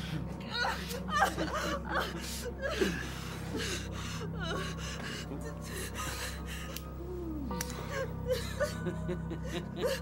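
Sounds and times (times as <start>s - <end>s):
woman sobbing and gasping: 0.0s - 10.0s.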